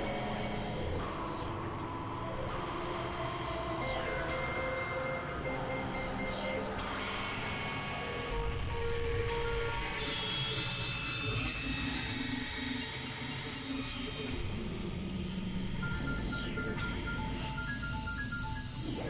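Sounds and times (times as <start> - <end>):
synthesizer drones: 0.5 - 9.9.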